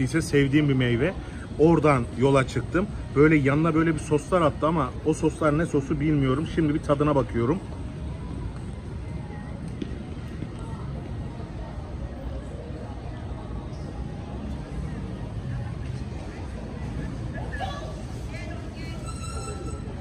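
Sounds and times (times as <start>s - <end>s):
low hum of city traffic: 0.0s - 20.0s
voices of passers-by: 0.0s - 20.0s.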